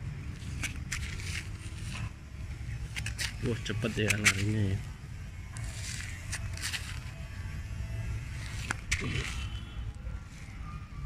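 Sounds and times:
low steady rumble: 4.7s - 11.0s.

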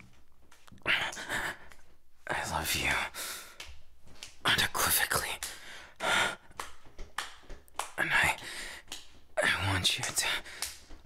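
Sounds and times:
man whispering and gasping: 0.7s - 3.6s, 4.4s - 6.5s, 8.0s - 10.9s.

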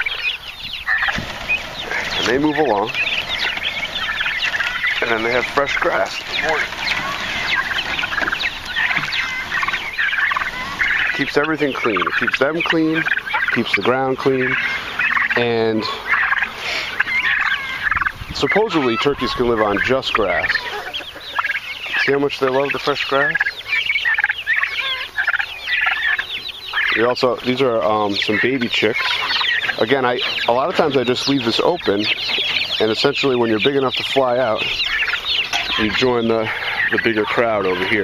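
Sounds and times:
young birds chirping and peeping: 0.0s - 38.0s.

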